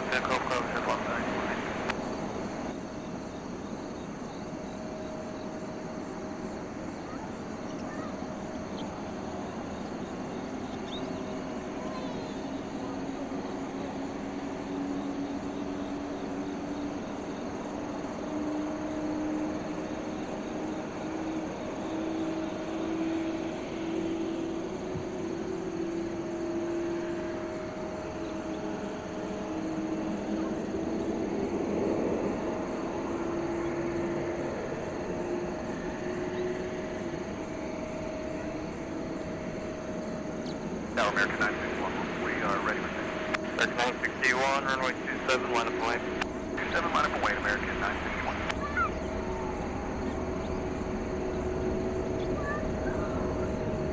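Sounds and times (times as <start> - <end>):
distant jet engines rumbling: 0.0 - 53.9.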